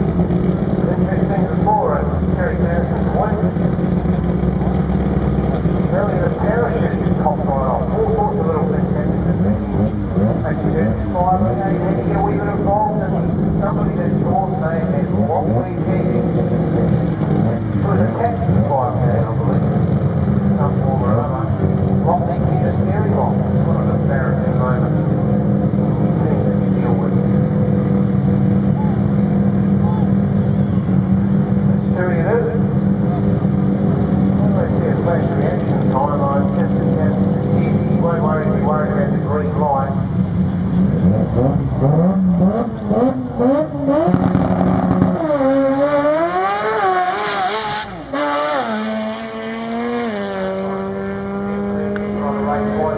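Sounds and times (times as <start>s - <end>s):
drag car engine idling and revving: 0.0s - 52.9s.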